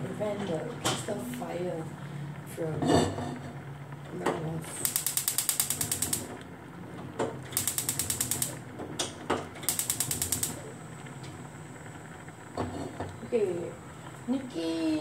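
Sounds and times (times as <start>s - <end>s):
gas hob igniter clicking: 4.8s - 6.5s, 7.5s - 10.8s.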